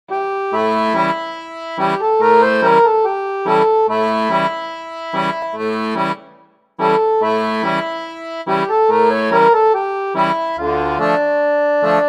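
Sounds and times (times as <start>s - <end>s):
instrumental music with held chords: 0.1s - 12.0s.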